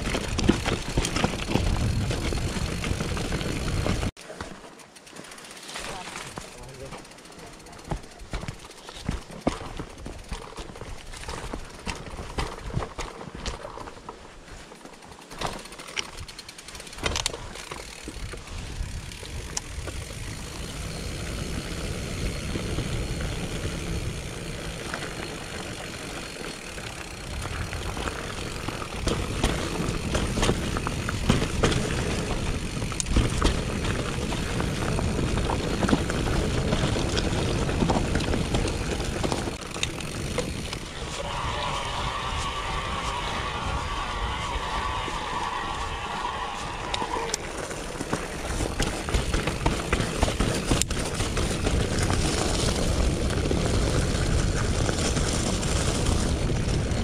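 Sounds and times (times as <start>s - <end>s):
bike rattling and clicking: 0.0s - 57.0s
bike tyre rumble on dirt: 0.0s - 57.0s
steady buzz: 39.5s - 50.2s.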